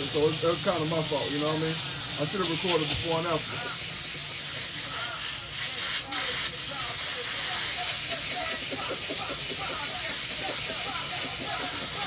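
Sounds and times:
steamer hissing: 0:00.0 - 0:12.0.

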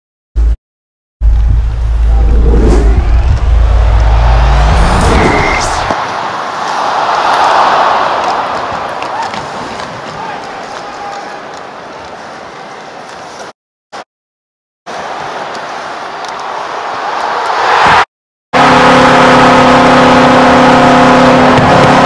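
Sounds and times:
heavy low rumble: 0:01.2 - 0:06.0
rising sweep and whooshes: 0:01.6 - 0:06.0
arena crowd noise: 0:03.6 - 0:13.5, 0:14.9 - 0:18.0.

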